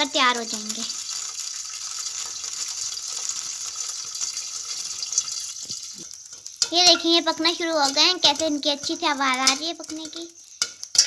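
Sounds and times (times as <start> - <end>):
popcorn kernels sizzling in pan: 0.0 - 11.0.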